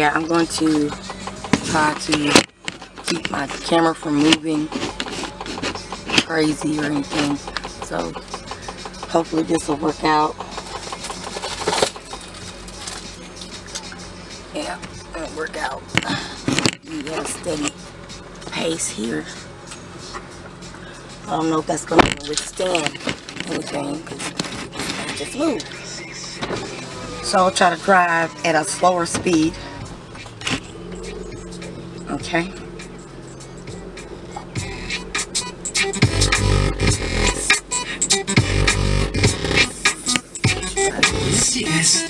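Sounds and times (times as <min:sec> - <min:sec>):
car engine idling: 0:00.0 - 0:42.0
handling noises: 0:00.3 - 0:09.2, 0:10.3 - 0:15.1, 0:15.9 - 0:18.6, 0:19.4 - 0:41.1.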